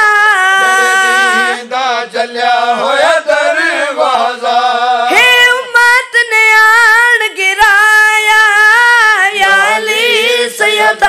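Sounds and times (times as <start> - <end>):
boy and men chanting: 0.1 - 5.2.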